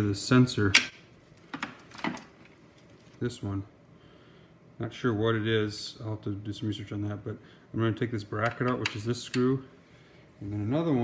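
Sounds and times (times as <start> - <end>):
wiring harness rustling: 1.2 - 3.3.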